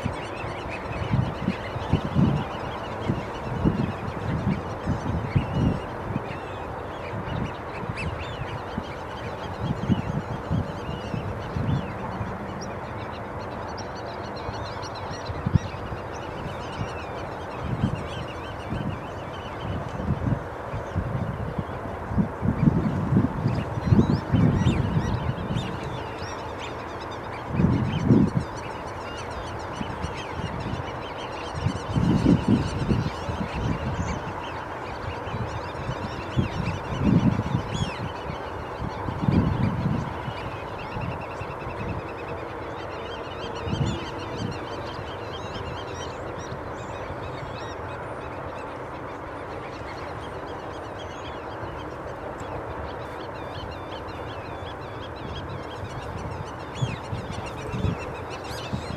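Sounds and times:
waterbirds honking: 0.0 - 58.9.

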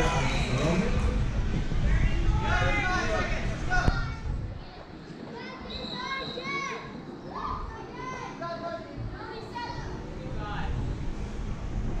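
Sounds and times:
children calling out and talking: 3.8 - 8.4.

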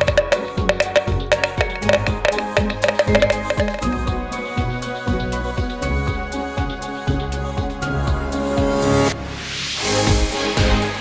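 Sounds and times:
background music with percussive beat: 0.0 - 6.2.

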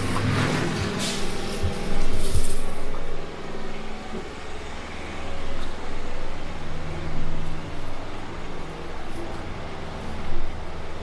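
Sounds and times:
city street traffic: 0.0 - 11.0
low engine hum: 0.0 - 11.0.

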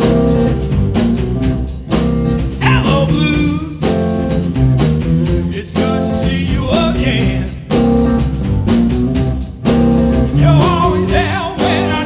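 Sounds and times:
bass guitar: 0.0 - 12.0
drum kit: 0.0 - 12.0
electric guitar bending notes: 7.7 - 12.0.

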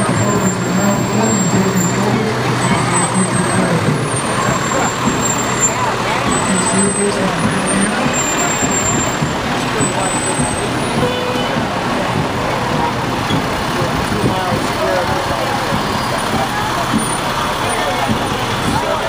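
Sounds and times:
fire truck diesel engines: 0.0 - 19.0
people talking: 0.0 - 19.0.

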